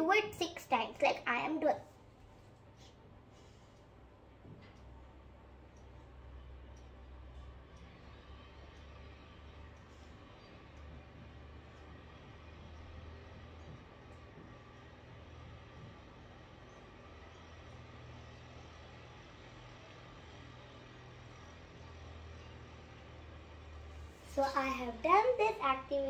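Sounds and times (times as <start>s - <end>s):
faint low hum: 0.0s - 26.0s.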